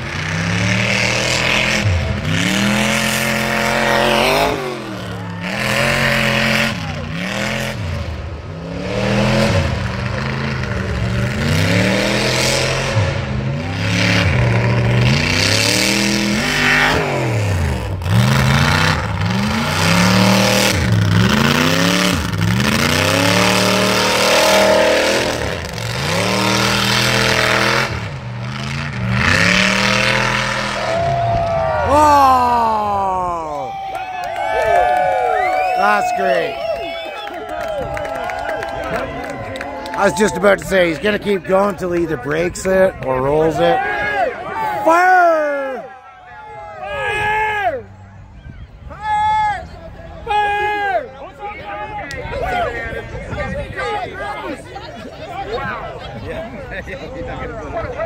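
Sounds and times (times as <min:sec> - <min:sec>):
truck engine revving: 0:00.0 - 0:33.7, 0:34.3 - 0:45.8.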